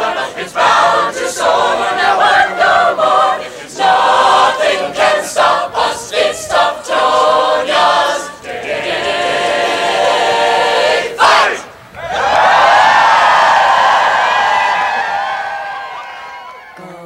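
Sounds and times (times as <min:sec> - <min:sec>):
choir singing: 0:00.0 - 0:15.2, 0:16.7 - 0:17.0.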